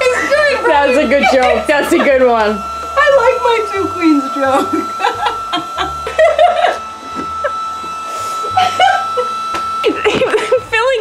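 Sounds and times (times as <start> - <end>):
people talking: 0.0 - 5.4, 10.0 - 11.0.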